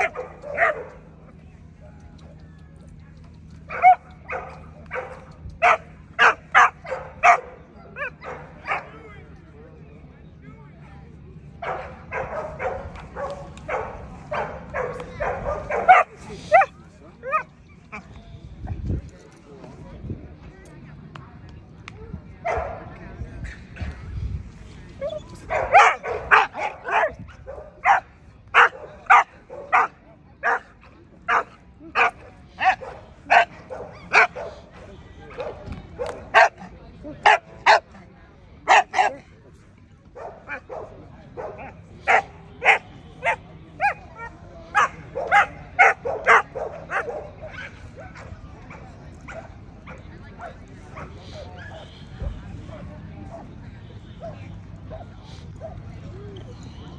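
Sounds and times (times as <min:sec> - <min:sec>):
dog barking: 0:00.0 - 0:00.9, 0:03.7 - 0:08.8, 0:28.6 - 0:30.7, 0:31.3 - 0:34.6, 0:44.8 - 0:47.8.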